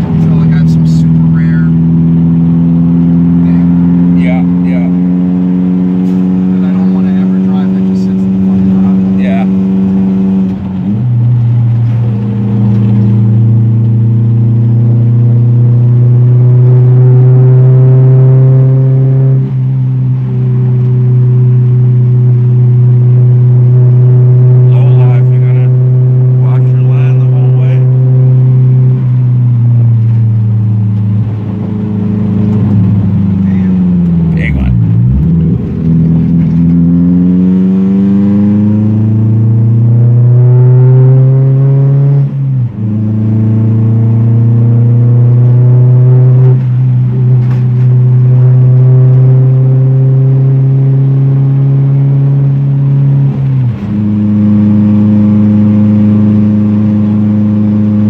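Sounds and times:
car engine revving: 0:00.0 - 0:58.0.

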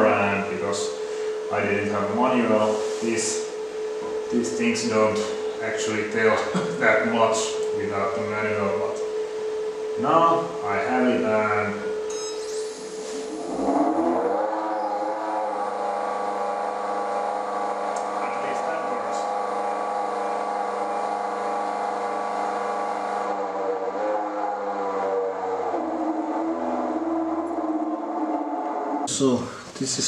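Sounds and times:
electric motor whine: 0:00.0 - 0:29.2
faint high whistle: 0:10.8 - 0:13.4.

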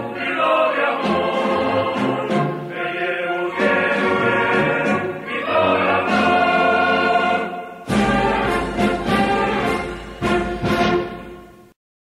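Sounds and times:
choir singing: 0:00.0 - 0:11.5.

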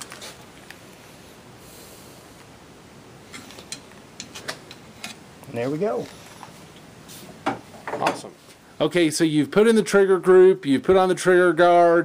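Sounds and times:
faint hiss: 0:00.1 - 0:02.6.

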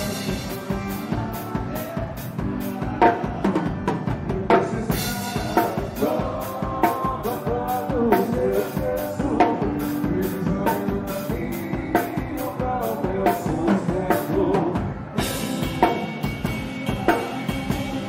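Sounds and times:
band's pitched instruments: 0:00.0 - 0:18.0
drum kit playing a quick beat: 0:00.0 - 0:18.0.

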